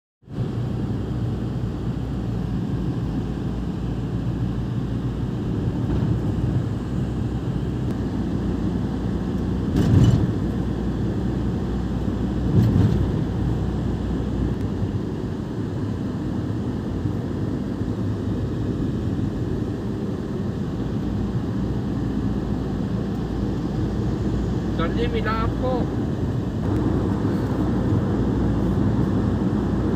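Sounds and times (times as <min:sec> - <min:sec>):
road and engine rumble in van: 0:00.2 - 0:29.9.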